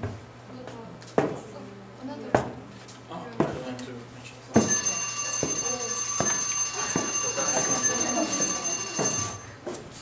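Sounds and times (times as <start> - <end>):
bell ringing: 4.6 - 9.6.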